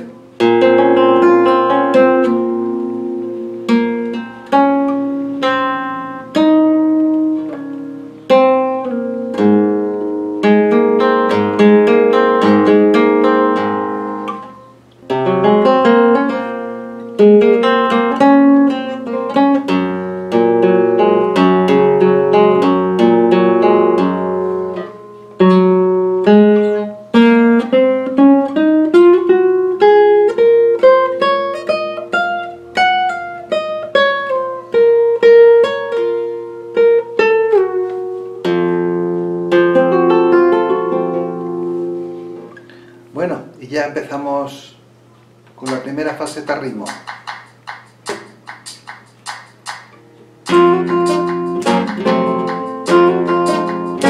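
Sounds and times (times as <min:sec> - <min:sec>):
flamenco guitar: 0:00.0 - 0:43.6, 0:45.1 - 0:54.0
person breathing: 0:42.5 - 0:43.1.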